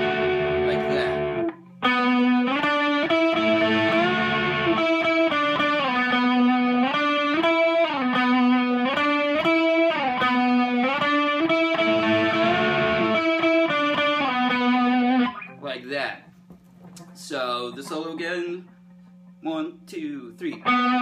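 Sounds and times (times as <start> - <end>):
electric guitar riff with bends: 0.0 - 15.6, 20.5 - 21.0.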